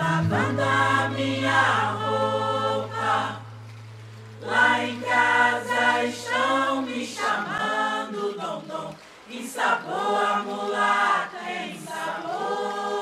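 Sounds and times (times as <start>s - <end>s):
chorus singing samba refrain: 0.0s - 13.0s.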